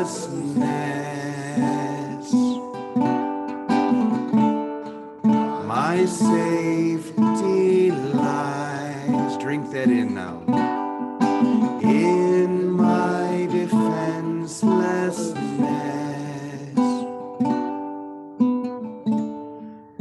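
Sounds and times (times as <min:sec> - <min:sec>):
man singing: 0:00.0 - 0:02.8, 0:05.5 - 0:10.6, 0:11.7 - 0:17.3
ukulele strummed in slow chords: 0:00.0 - 0:17.6.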